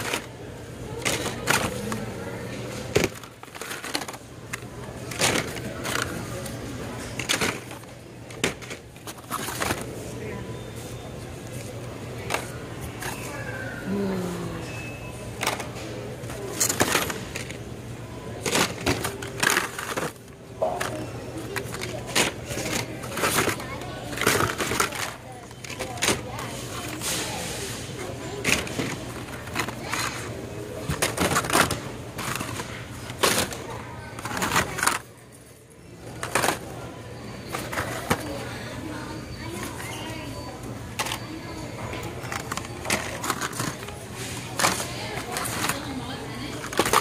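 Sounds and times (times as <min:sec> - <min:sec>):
plastic packs clacking and rustling: 0:00.0 - 0:13.5, 0:15.3 - 0:38.6, 0:39.5 - 0:47.0.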